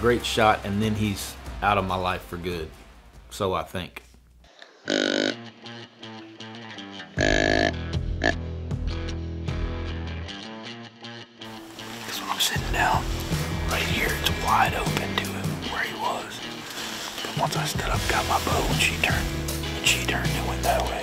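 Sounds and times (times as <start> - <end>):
dramatic background music: 12.4 - 21.0.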